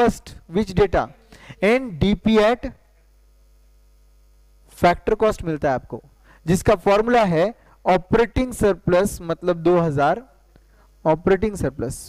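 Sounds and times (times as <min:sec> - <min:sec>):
man speaking: 0:00.0 - 0:02.9, 0:04.7 - 0:10.4, 0:11.0 - 0:12.0
low electrical hum: 0:00.0 - 0:12.0.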